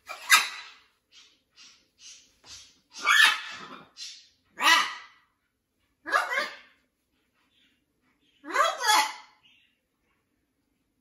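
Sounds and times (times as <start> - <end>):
macaws calling: 0.0 - 5.2.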